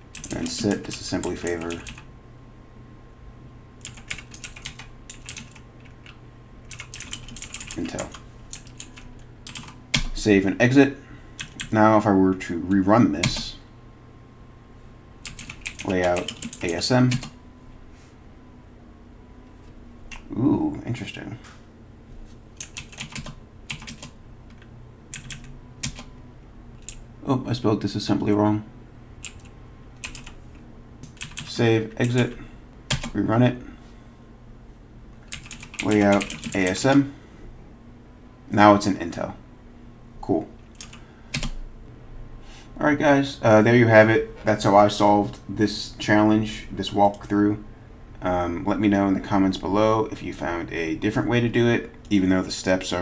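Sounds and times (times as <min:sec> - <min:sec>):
typing on computer keyboard: 0:00.1 - 0:02.0, 0:03.8 - 0:10.1, 0:11.4 - 0:11.7, 0:15.2 - 0:17.3, 0:22.6 - 0:24.1, 0:25.1 - 0:26.1, 0:29.2 - 0:30.4, 0:31.0 - 0:32.3, 0:35.3 - 0:36.8, 0:40.7 - 0:41.6.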